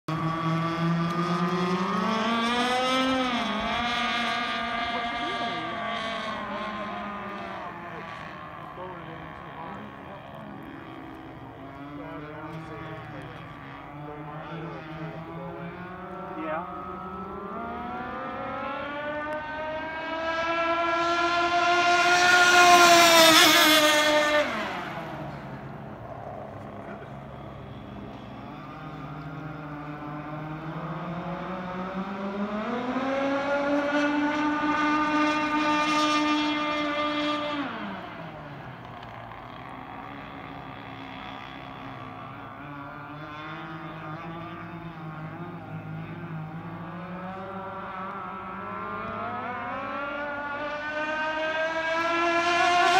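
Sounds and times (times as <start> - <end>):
speed boat motor whine: 0.1 - 52.9.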